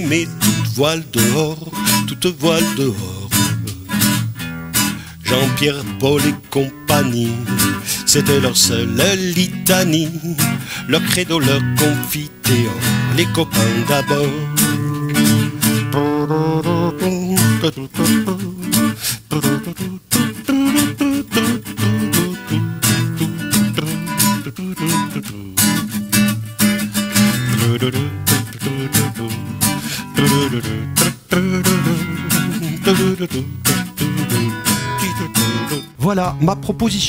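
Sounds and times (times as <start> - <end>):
classical guitar strumming: 0.0 - 37.0.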